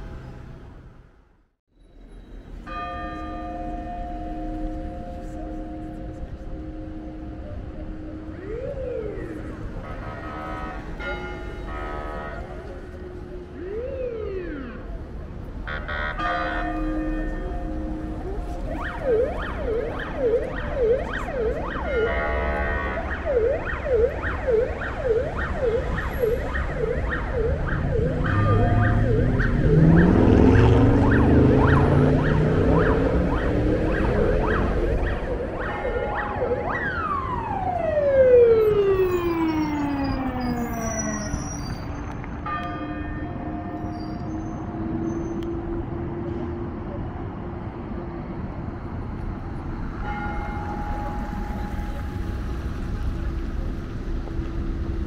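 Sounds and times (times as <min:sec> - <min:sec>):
traffic noise: 0:00.0 - 0:55.0
emergency siren yelping: 0:06.9 - 0:10.8, 0:11.7 - 0:42.1.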